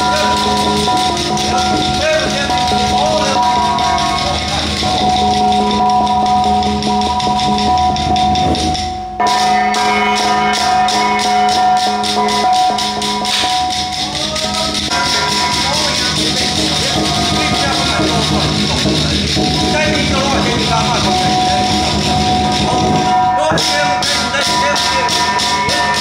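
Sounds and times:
shaken jingling rhythm: 0.0 - 26.0
sustained chanted tones: 0.0 - 26.0.

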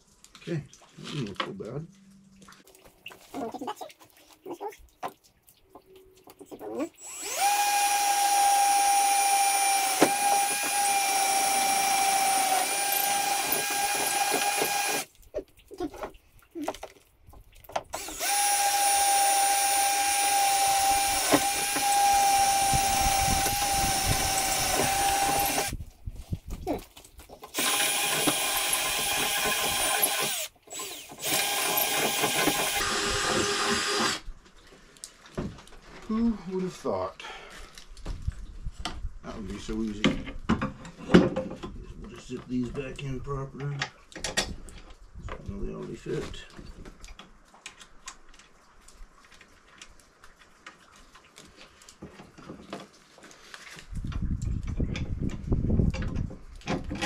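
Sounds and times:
power drill whining: 7.0 - 15.1, 18.0 - 25.8, 27.5 - 34.2.

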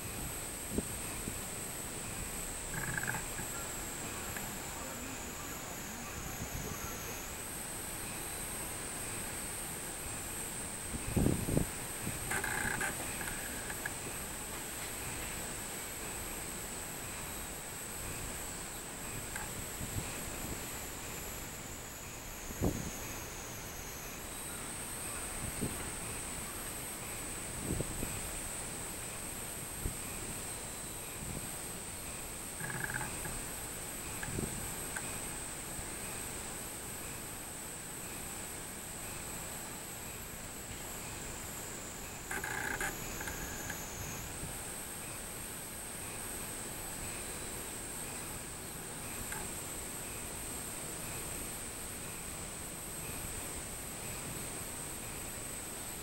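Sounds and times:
cicadas singing: 0.0 - 56.0.

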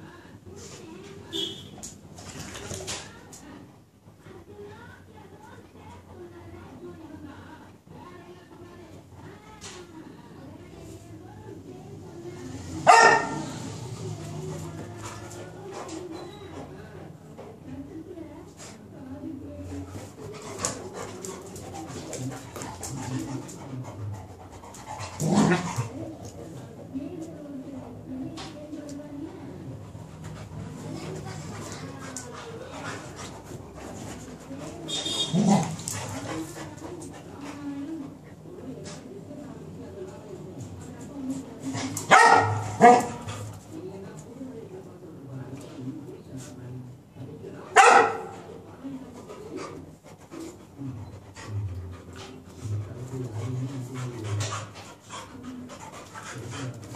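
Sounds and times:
dogs barking: 12.8 - 13.6, 42.1 - 43.2, 47.7 - 48.4
dogs growling and snarling: 20.0 - 26.8, 29.6 - 38.2.

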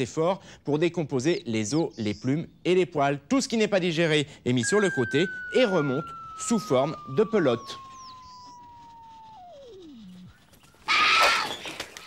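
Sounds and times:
cartoon whistle sliding down: 4.6 - 10.0.

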